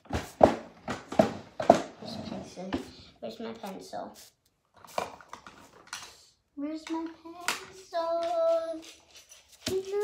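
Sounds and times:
boy talking: 2.0s - 4.4s, 6.5s - 9.0s, 9.6s - 10.0s.

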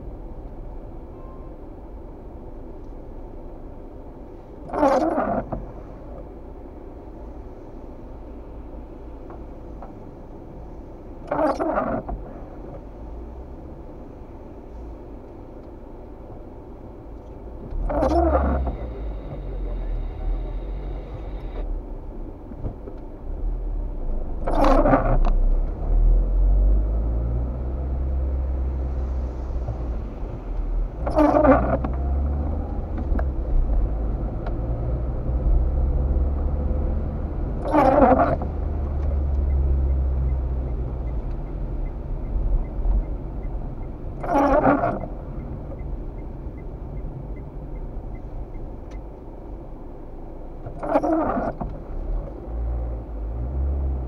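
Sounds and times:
car engine and road rumble: 0.0s - 54.0s
windshield wiper sweep: 24.4s - 25.3s, 28.4s - 34.6s, 37.6s - 49.2s, 50.6s - 52.0s.

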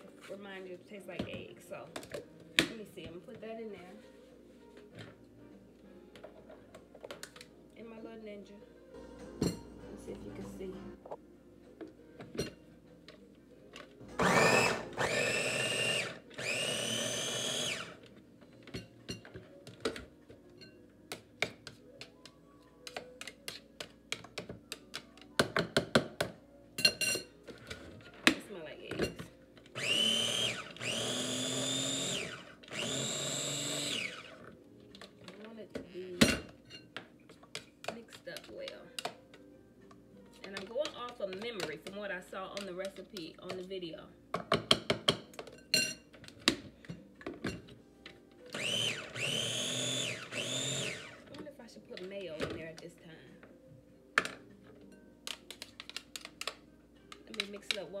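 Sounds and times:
food processor motor whine: 14.1s - 18.1s, 29.8s - 34.5s, 48.5s - 51.3s
plastic clicks and taps: 55.2s - 57.8s.

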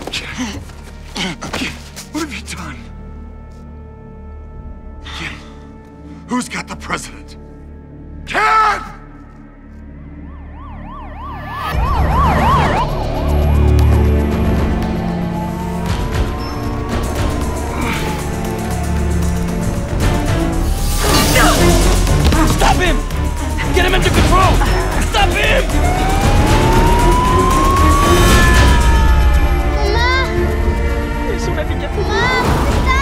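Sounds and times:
ambulance siren yelping: 9.8s - 33.0s.

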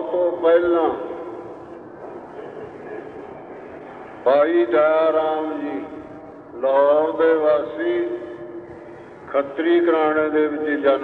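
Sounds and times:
man's voice: 0.0s - 1.3s, 4.3s - 6.0s, 6.6s - 8.4s, 9.3s - 11.0s.

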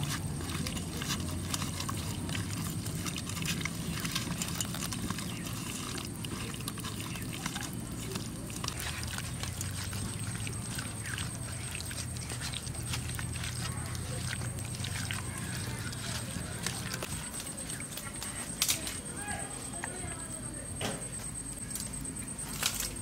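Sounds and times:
soft squelches of paste: 0.0s - 23.0s
steady high-pitched whine: 2.6s - 23.0s.

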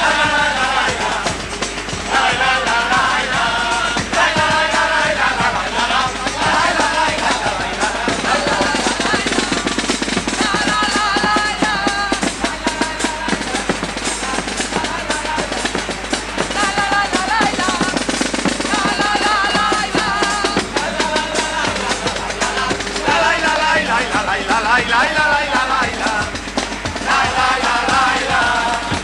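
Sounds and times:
rapid snare and bass drum: 0.0s - 29.0s.

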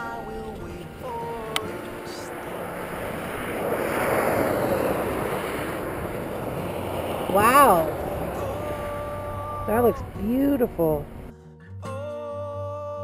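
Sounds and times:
wind rushing on camera: 0.0s - 11.3s
motorcycle engine running: 2.1s - 11.3s.

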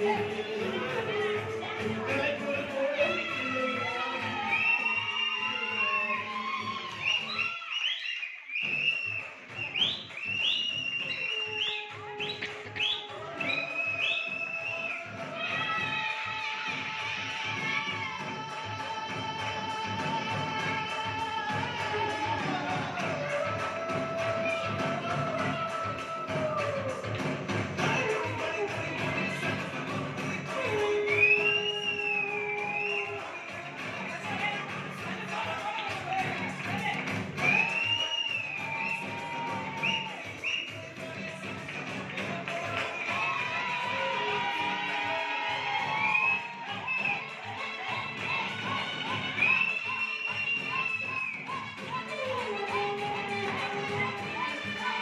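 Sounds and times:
whistle-like melody: 3.8s - 15.9s, 22.6s - 27.0s, 30.2s - 33.5s, 37.4s - 41.6s, 42.6s - 55.0s.

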